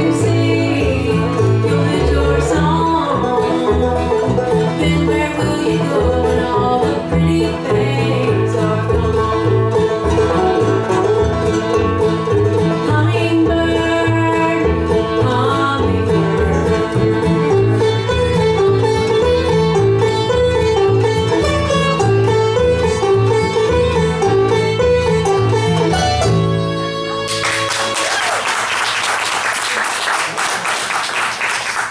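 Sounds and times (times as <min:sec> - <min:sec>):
walking bass line: 0:00.0 - 0:27.7
bluegrass band playing: 0:00.0 - 0:29.4.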